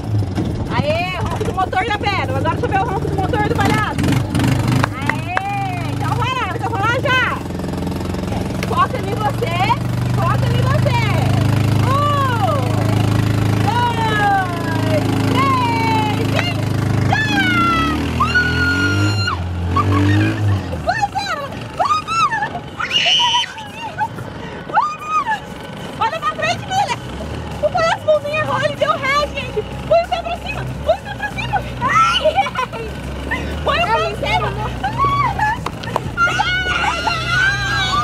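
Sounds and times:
excited shouting voices: 10.5 - 38.0.

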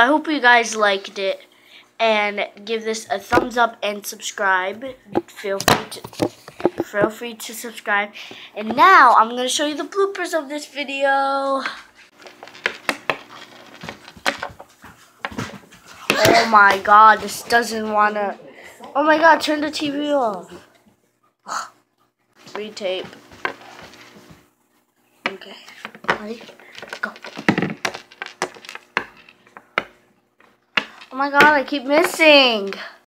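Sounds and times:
knocks on wooden tabletop: 27.3 - 29.1.

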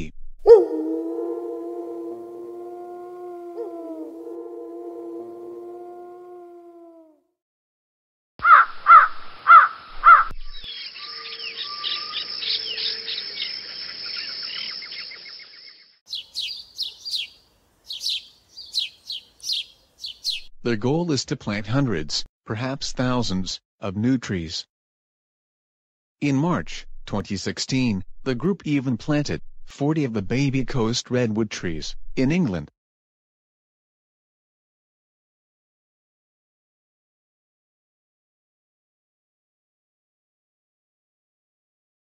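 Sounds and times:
harsh bird calls: 8.4 - 20.5
high chirping birdsong: 8.4 - 20.5.

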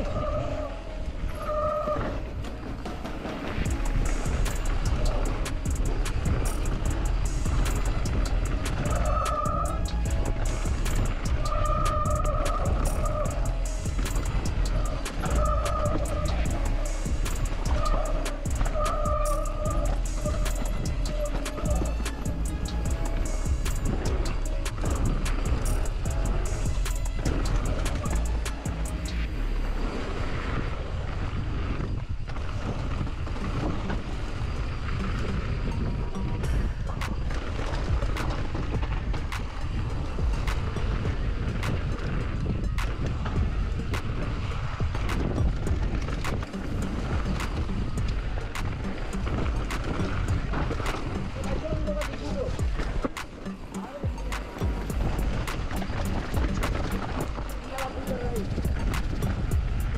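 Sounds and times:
background music: 0.0 - 30.6, 34.2 - 59.9
mountain bike rattling: 0.0 - 59.9
wind on microphone: 0.0 - 59.9.

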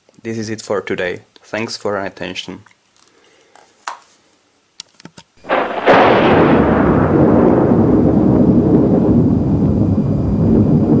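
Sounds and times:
sharp loud crack: 5.4 - 9.3
rolling thunder-like rumble: 5.5 - 11.0.

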